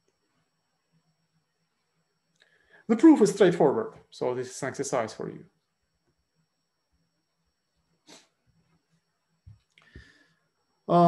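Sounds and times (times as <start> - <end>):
man speaking: 2.9 - 5.5.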